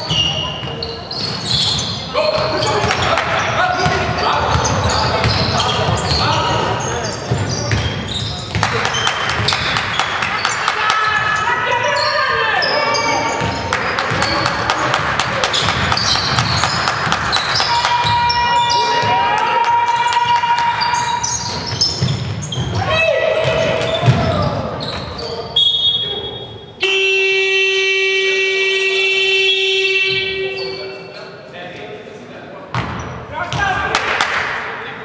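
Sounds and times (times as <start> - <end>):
sneakers squeaking on hardwood: 0.0 - 19.4, 20.0 - 26.7
basketball bouncing: 2.4 - 6.3, 7.2 - 11.2, 13.3 - 18.4, 21.3 - 25.2
players shouting: 8.7 - 21.9, 22.6 - 24.8.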